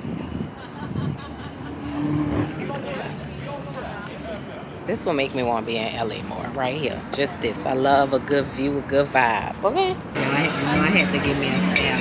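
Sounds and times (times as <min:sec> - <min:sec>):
vehicle passing: 0:00.0 - 0:12.0
people talking: 0:02.5 - 0:12.0.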